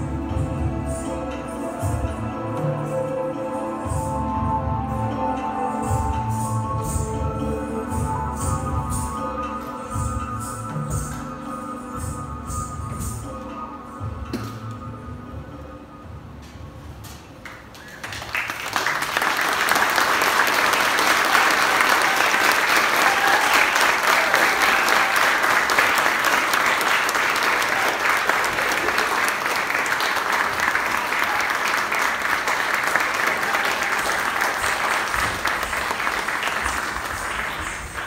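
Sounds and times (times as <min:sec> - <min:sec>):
audience applauding: 0:17.4 - 0:38.0.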